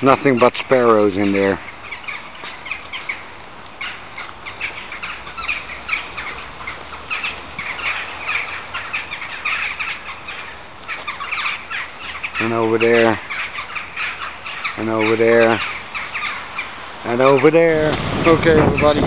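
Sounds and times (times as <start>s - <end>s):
sparrows chirping: 0.0s - 19.0s.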